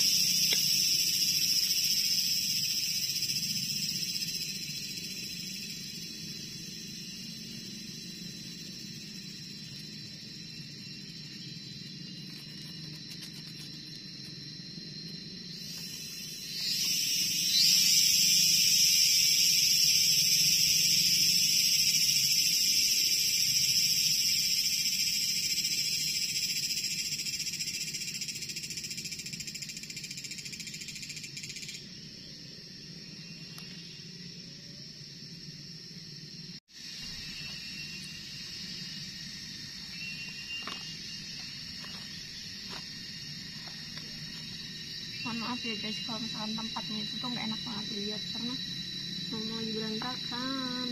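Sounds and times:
cicada buzzing: 0.0s - 50.9s
soft high insect drone: 0.0s - 50.9s.

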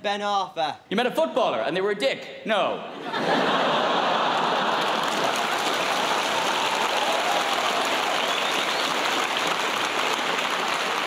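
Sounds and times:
audience applauding: 3.8s - 11.0s.

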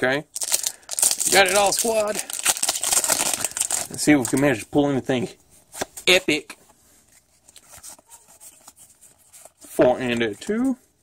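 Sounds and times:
trading cards rustling and sliding: 5.5s - 10.8s.

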